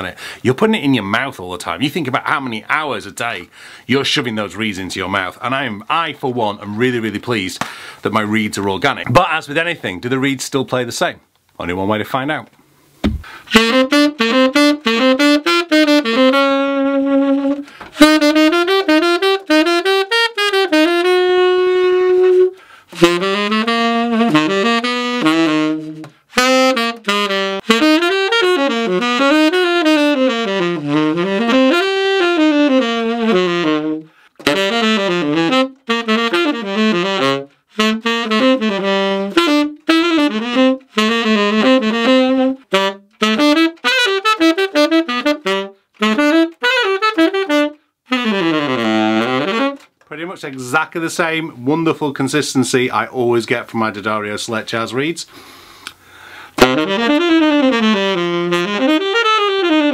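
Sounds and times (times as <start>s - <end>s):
player breathing: 0.2s - 0.4s, 3.5s - 3.9s, 7.6s - 8.0s, 12.8s - 13.5s, 17.6s - 18.0s, 22.5s - 23.0s, 34.1s - 34.4s, 55.3s - 56.6s
tenor saxophone playing jazz: 12.9s - 50.3s, 55.0s - 59.9s.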